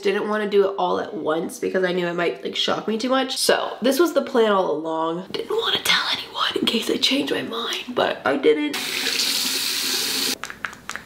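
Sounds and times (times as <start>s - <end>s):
water running from a tap: 8.8s - 10.4s.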